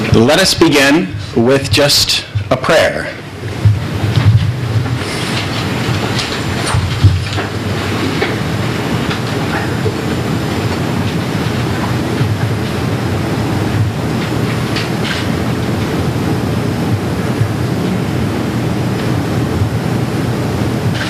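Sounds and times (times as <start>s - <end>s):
low rumbling background noise: 0.0s - 21.0s.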